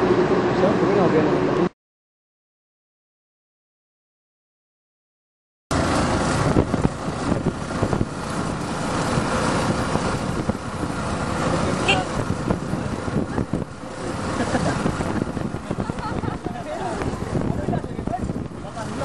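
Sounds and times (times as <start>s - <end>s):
wind and road noise: 0.0s - 1.8s, 5.7s - 19.0s
motorcycle engine running: 5.7s - 19.0s.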